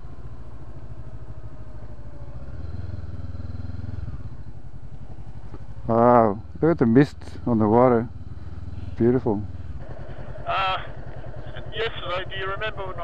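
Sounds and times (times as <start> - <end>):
motorcycle engine low rumble: 0.0 - 13.0.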